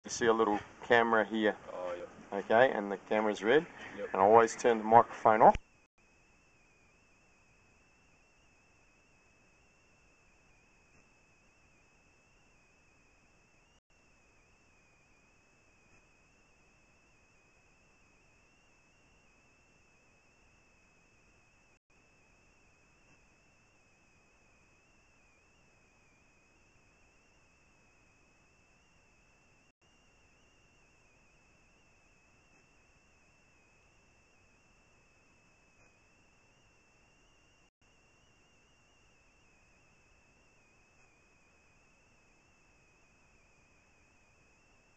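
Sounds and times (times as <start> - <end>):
faint steady hiss: 0.0 - 44.9
thin high-pitched whine: 0.0 - 44.9.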